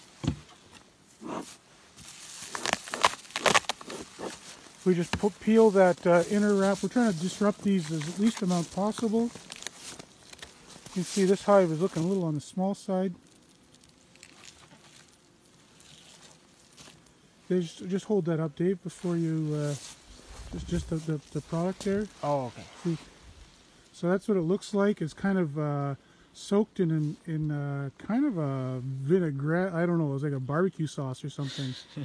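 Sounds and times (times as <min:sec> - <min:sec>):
rustling and crinkling wrap: 0:00.0 - 0:18.0, 0:18.6 - 0:23.6.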